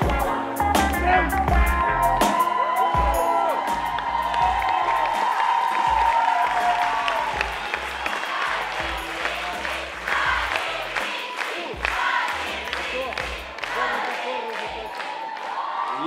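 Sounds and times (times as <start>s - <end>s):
backing music: 0.0s - 15.1s
audience applauding and cheering: 0.0s - 16.0s.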